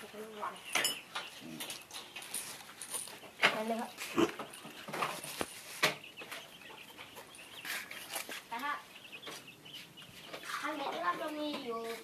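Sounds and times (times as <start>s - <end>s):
chicken clucking: 3.1s - 12.0s.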